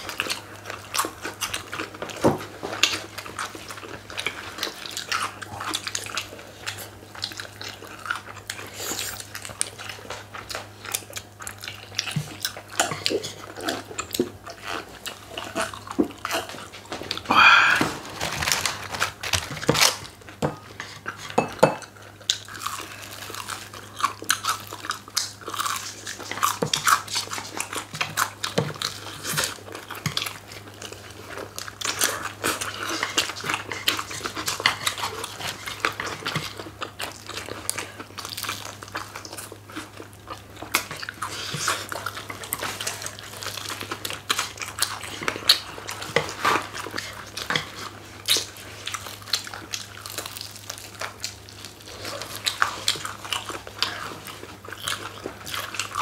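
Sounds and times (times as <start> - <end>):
crunching crispy chicken: 0.0 - 20.4, 22.0 - 56.0.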